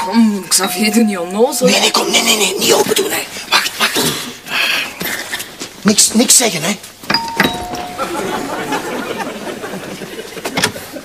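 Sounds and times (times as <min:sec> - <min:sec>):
two-tone doorbell chime: 0:00.0 - 0:01.6, 0:07.1 - 0:09.0
noisy commotion: 0:00.0 - 0:05.8, 0:06.8 - 0:11.0.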